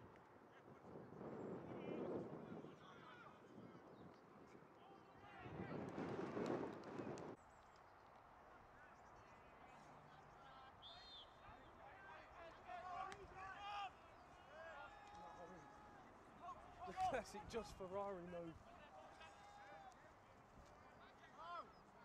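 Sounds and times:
wind noise on microphone: 0.0s - 7.4s.

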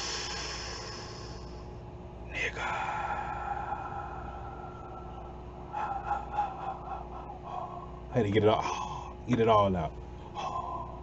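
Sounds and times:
man exhaling breathily: 0.0s - 1.6s, 2.6s - 9.2s
man gasping breaths: 0.0s - 1.6s, 2.3s - 9.2s, 10.2s - 11.0s.

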